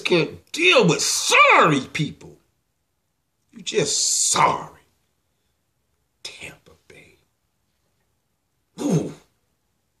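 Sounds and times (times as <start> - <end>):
man clearing his throat: 8.8 - 9.3.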